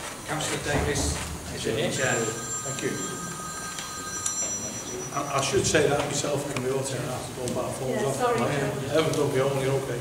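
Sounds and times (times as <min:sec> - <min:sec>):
mobile phone ringing: 0:01.9 - 0:06.1.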